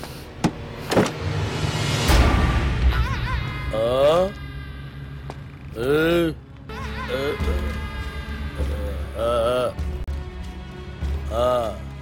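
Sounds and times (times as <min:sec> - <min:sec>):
low music rumble: 0:00.0 - 0:12.0.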